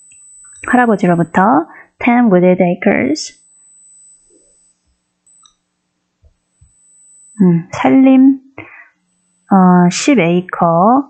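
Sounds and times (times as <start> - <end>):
faint steady hum: 0.0 - 11.0
soft click: 5.2 - 5.6.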